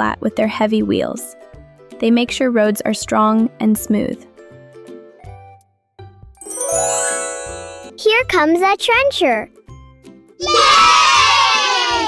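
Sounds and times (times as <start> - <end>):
children cheering: 10.4 - 12.0.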